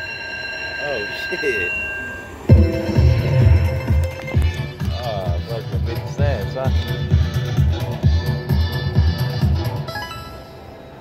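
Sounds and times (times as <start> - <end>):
slot machine electronic chime: 0.8 - 4.6, 9.9 - 10.6.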